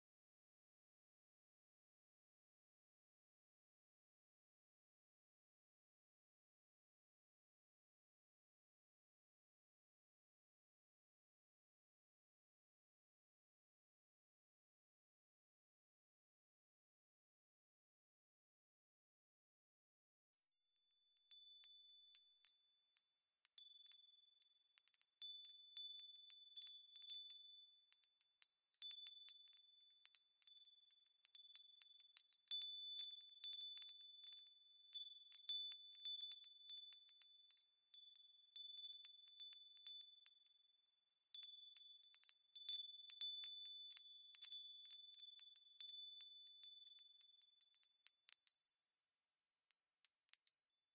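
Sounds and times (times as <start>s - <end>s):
high-pitched chimes tinkling: 20.8s - 50.9s.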